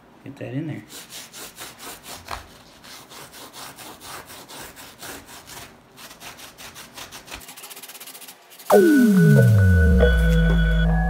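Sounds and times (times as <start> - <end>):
brush scrubbing fabric: 0.7 - 8.7.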